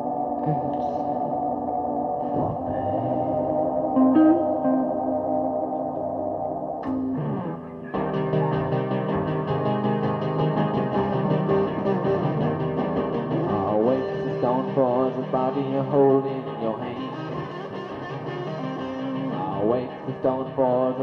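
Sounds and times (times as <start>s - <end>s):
effects-laden guitar: 0.0s - 21.0s
sustained backing music: 0.0s - 21.0s.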